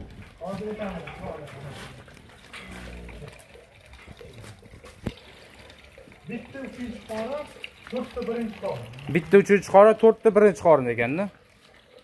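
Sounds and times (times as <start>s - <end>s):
cow lowing: 1.6s - 3.6s.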